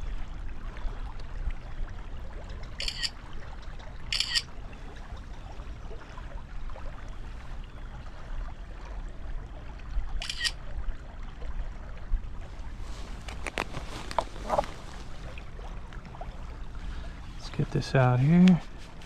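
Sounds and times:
stream trickling: 0:00.0 - 0:19.0
smartphone camera shutter: 0:02.8 - 0:03.1, 0:04.1 - 0:04.4, 0:10.2 - 0:10.6.

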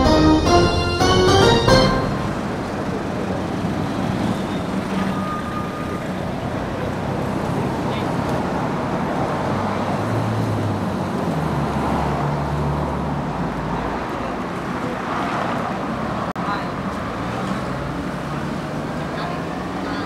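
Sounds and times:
passing motor vehicles: 0:02.3 - 0:20.0.

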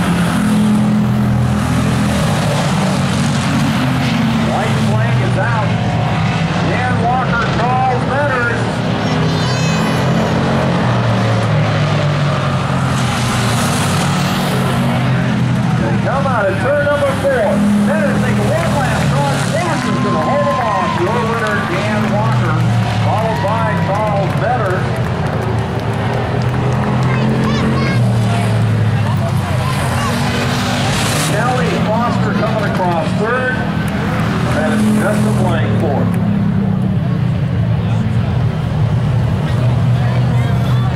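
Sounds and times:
race car engines droning: 0:00.0 - 0:40.9
voices calling: 0:01.8 - 0:11.8, 0:14.0 - 0:38.4.

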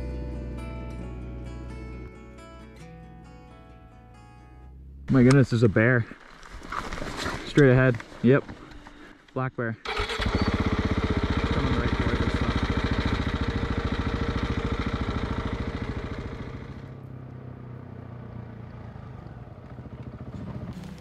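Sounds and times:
distant motorcycle engine: 0:09.9 - 0:21.0
motorcycle engine running close by: 0:09.9 - 0:21.0.

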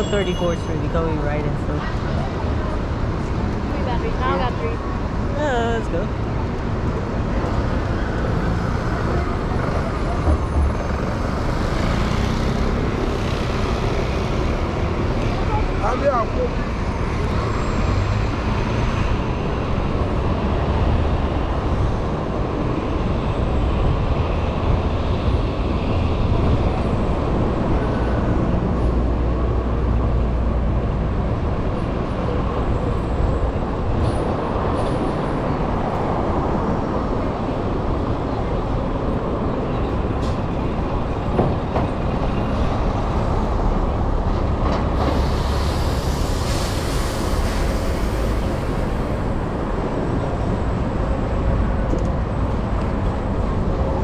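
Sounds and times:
city street traffic: 0:00.0 - 0:54.0.

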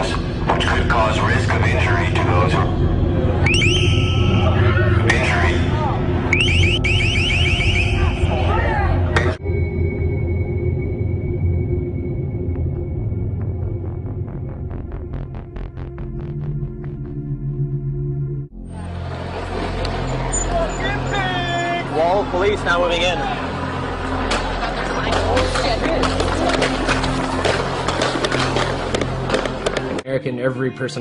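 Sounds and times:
low rumble: 0:00.0 - 0:29.6
electronic siren whooping: 0:03.2 - 0:05.0, 0:06.2 - 0:08.4
vehicle engines rumbling: 0:18.6 - 0:30.0.

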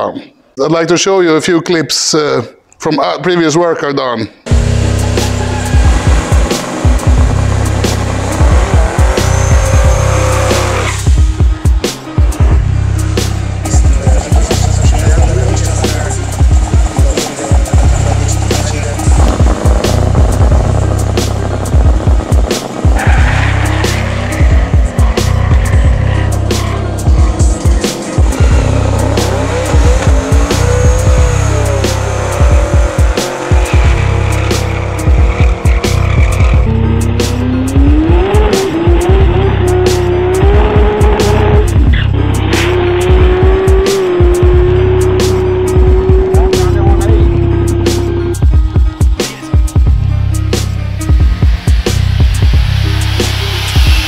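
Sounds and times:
race car engines revving: 0:04.5 - 0:11.2, 0:11.9 - 0:48.5
music with heavy beat: 0:04.5 - 0:54.0.

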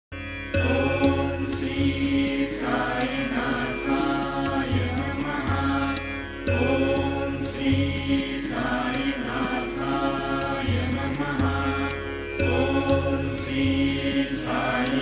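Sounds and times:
steady drone with low pulse: 0:00.3 - 0:15.0.

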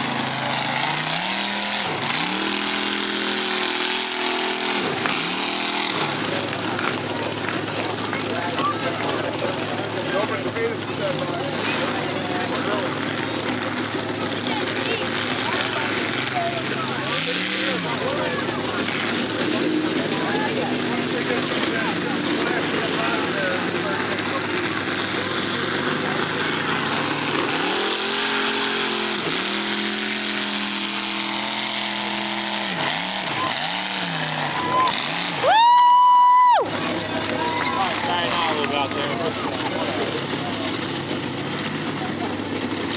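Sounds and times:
crowd chatter: 0:00.0 - 0:42.9
truck engine revving in mud: 0:00.0 - 0:42.9.

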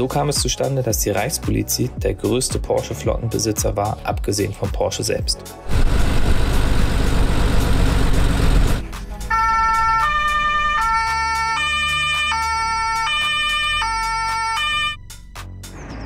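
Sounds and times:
engine and road rumble: 0:05.5 - 0:16.0
two-tone police siren: 0:09.2 - 0:15.0.

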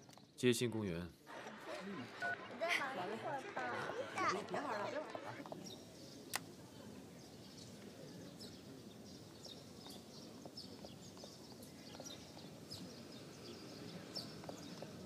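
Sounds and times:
low steady outdoor background: 0:00.0 - 0:15.0.

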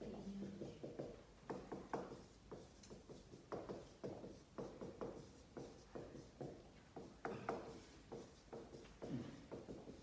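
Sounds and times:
marker scratching on whiteboard: 0:00.0 - 0:10.0.

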